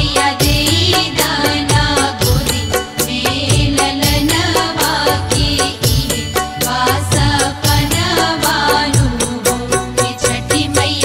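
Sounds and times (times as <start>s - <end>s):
devotional instrumental music with drum: 0.0s - 11.0s.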